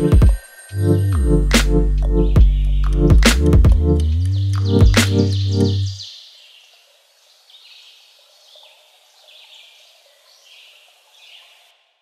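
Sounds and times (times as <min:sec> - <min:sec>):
music: 0:00.0 - 0:06.0.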